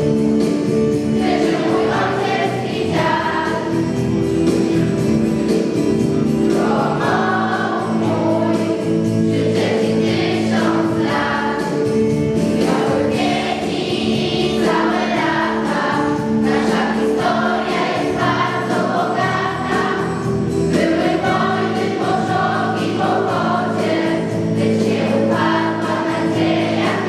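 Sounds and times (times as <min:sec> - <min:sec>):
held accompaniment notes: 0:00.0 - 0:27.0
children's choir singing: 0:00.1 - 0:27.0.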